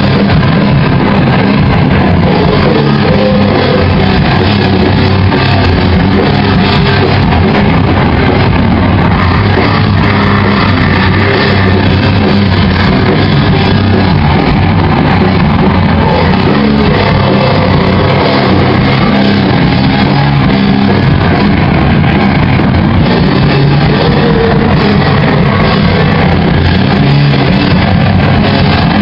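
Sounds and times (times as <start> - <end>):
drum kit: 0.0 - 29.0
electric guitars: 0.0 - 29.0.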